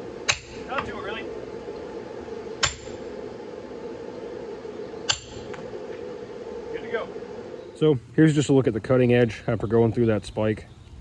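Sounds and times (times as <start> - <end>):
steady hum: 0.0 - 11.0
hammer striking metal: 0.3 - 0.6, 2.6 - 3.0, 5.1 - 5.4.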